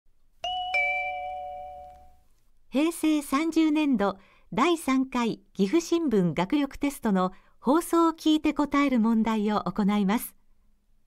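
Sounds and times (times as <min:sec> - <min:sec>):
two-note electronic chime: 0:00.4 - 0:02.2.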